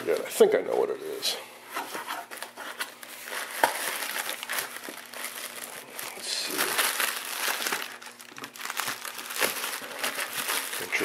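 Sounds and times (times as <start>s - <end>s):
plastic wrap crinkling: 0.0s - 1.1s, 1.8s - 11.0s.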